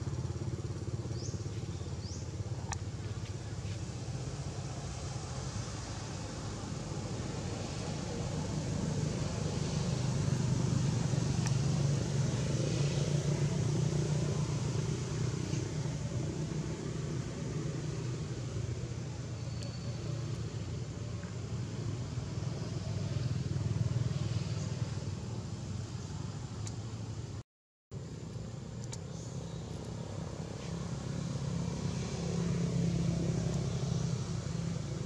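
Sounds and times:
road traffic engine rumble: 0.0s - 27.4s, 28.0s - 35.0s
faint clicks: 28.8s - 29.1s.

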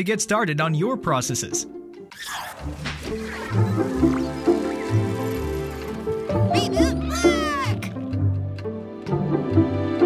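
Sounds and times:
jingle background music: 0.0s - 1.8s, 3.2s - 10.0s
cartoonish voice cry: 6.6s - 7.9s.

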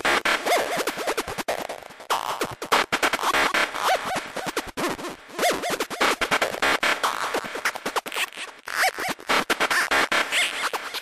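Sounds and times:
stuttering bursts of scratchy noise: 0.0s - 11.0s.

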